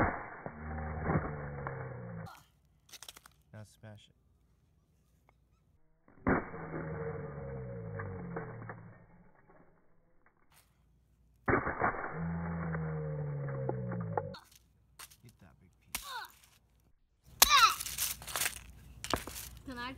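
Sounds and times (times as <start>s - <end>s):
sledgehammer hit: 6.2s - 9.0s, 11.5s - 14.4s.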